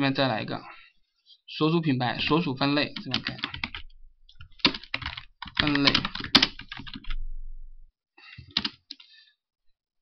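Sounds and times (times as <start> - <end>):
computer keyboard typing: 3.0 - 7.2, 8.4 - 9.1.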